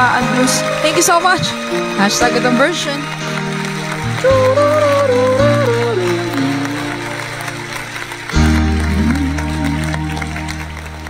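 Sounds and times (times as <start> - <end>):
instrumental backing music: 0.0 - 11.0.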